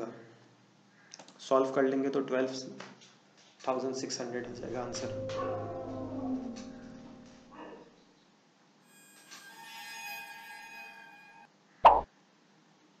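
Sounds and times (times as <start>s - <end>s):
ringing chime: 4.4s - 7.8s, 8.8s - 11.5s.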